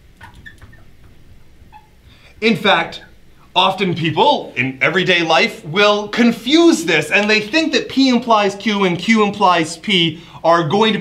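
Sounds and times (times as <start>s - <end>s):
marker squeaking on glass: 0.0s - 2.0s.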